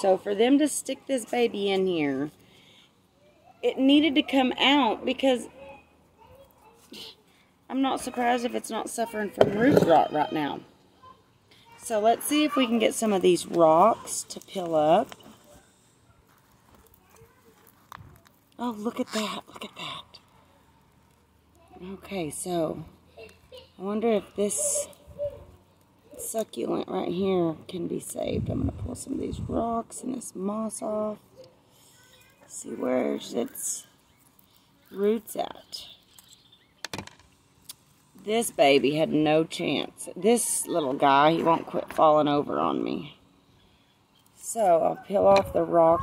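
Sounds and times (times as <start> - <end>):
gravel clicking and scraping: 13.1 - 26.6.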